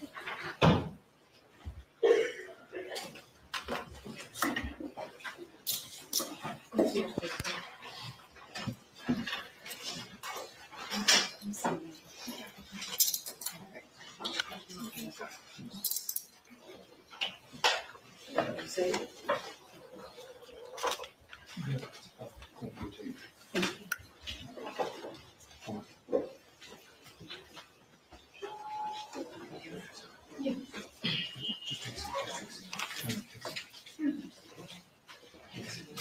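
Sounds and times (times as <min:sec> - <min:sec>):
handcuffs and chains clinking: 0:05.6 - 0:06.4, 0:12.7 - 0:13.7, 0:14.8 - 0:16.5.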